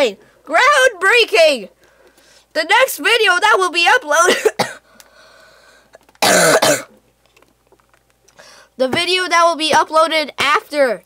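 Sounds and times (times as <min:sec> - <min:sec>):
person coughing: 0:04.3 - 0:04.8, 0:06.2 - 0:06.9.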